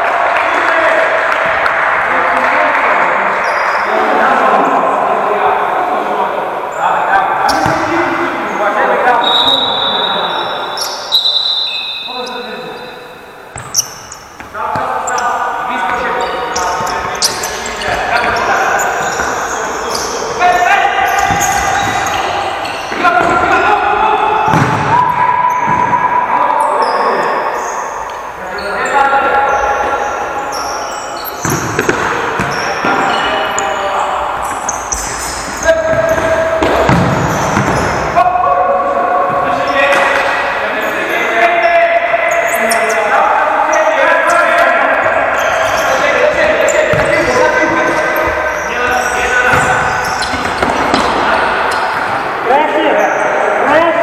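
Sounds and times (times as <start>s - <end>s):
players shouting: 0.0s - 54.0s.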